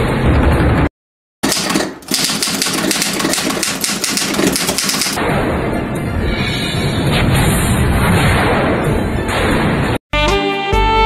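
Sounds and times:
rapid clicks: 0:01.4 - 0:05.2.

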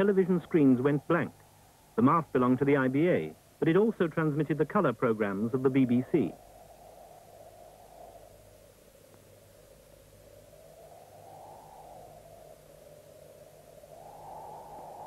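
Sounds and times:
low steady hum: 0:00.0 - 0:15.0
wind-like rushing: 0:04.9 - 0:15.0.

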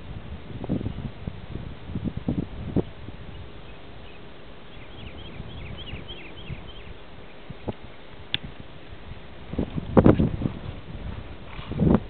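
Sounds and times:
small bird chirping: 0:03.3 - 0:07.8.

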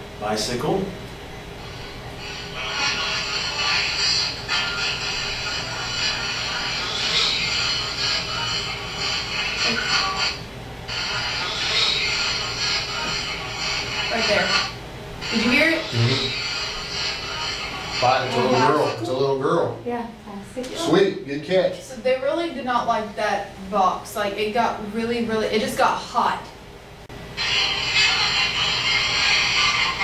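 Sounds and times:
static hiss: 0:01.5 - 0:19.6, 0:27.3 - 0:30.0.

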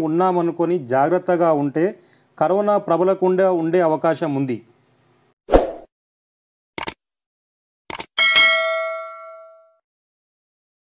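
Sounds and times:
small bell dinging: 0:08.2 - 0:09.8.

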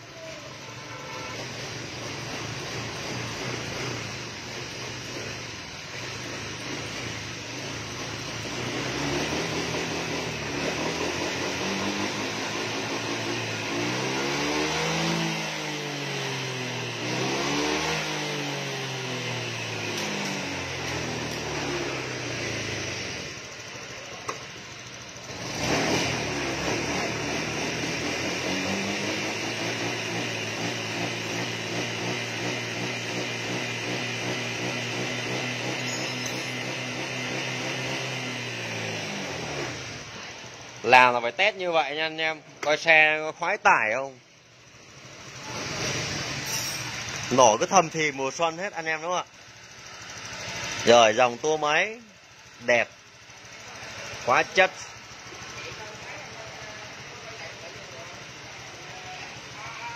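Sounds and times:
scooter engine revving: 0:00.1 - 0:42.8, 0:43.7 - 0:59.9.

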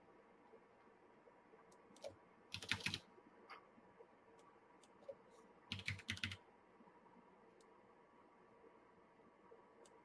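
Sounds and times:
keyboard keys clicking: 0:02.0 - 0:03.0, 0:05.7 - 0:06.4.

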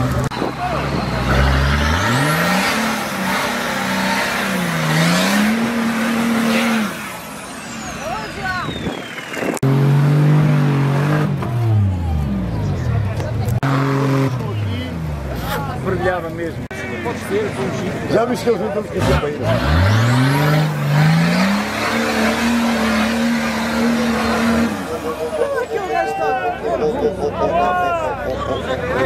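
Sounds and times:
vehicle engine revving hard: 0:00.0 - 0:12.6, 0:13.5 - 0:15.5, 0:18.9 - 0:25.4.

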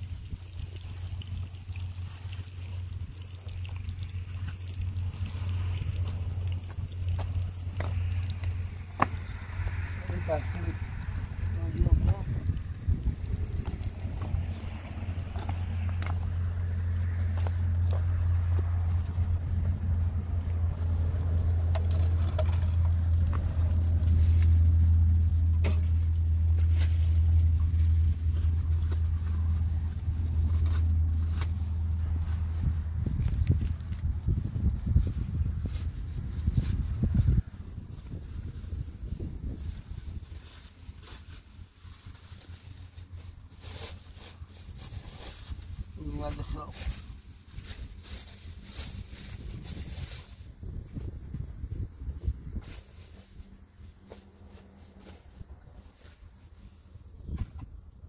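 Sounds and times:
low rumble: 0:00.0 - 0:43.4.

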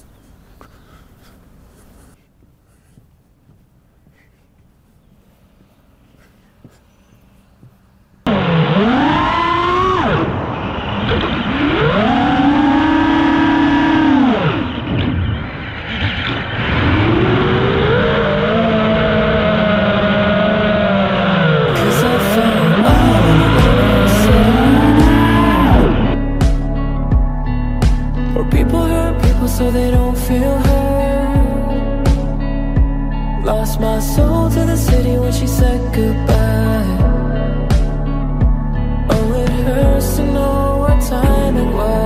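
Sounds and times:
quadcopter motors whining: 0:08.3 - 0:26.2
background music with a beat: 0:22.9 - 0:33.1, 0:33.9 - 0:41.9.

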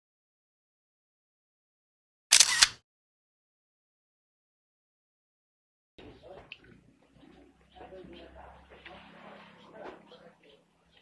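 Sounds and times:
camera shutter click: 0:02.3 - 0:02.8.

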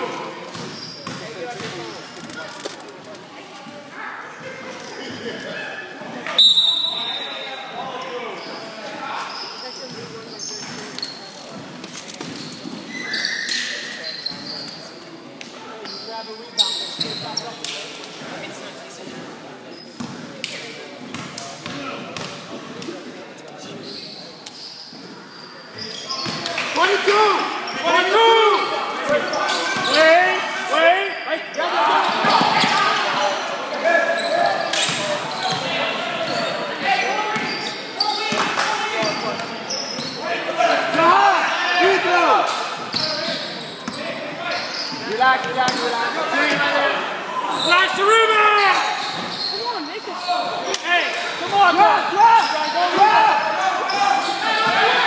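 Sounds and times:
sneakers squeaking on hardwood: 0:00.4 - 0:02.2, 0:08.3 - 0:15.0, 0:15.8 - 0:17.6, 0:19.7 - 0:20.3, 0:23.6 - 0:26.8, 0:27.7 - 0:30.3, 0:31.5 - 0:33.0, 0:33.9 - 0:41.1, 0:42.8 - 0:46.7, 0:48.6 - 0:50.6.

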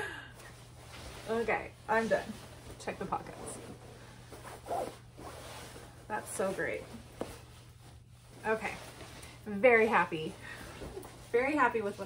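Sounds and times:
nylon jacket rustling: 0:00.4 - 0:12.0.

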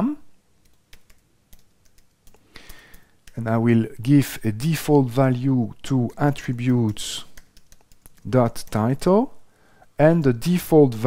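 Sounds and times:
faint keyboard keystrokes: 0:06.1 - 0:08.8.

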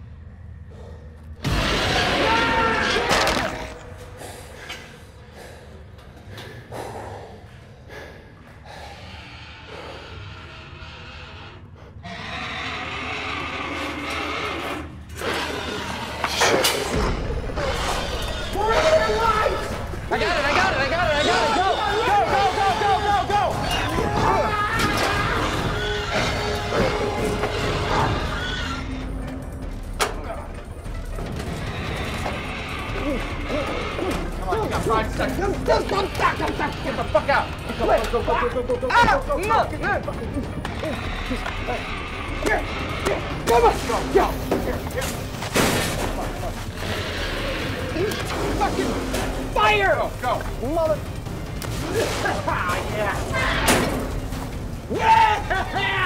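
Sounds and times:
film soundtrack music: 0:00.0 - 0:56.0.

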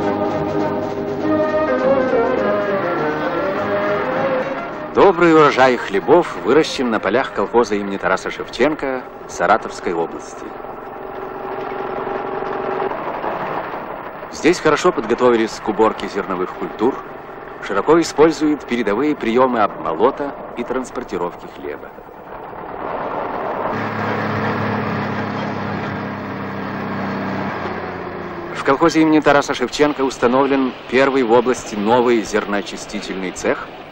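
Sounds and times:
combine harvester engine hum: 0:00.0 - 0:33.9.

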